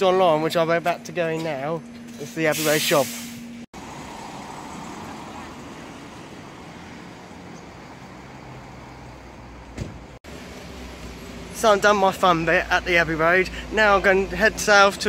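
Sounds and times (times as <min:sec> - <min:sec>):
street traffic hum: 0:00.0 - 0:15.0.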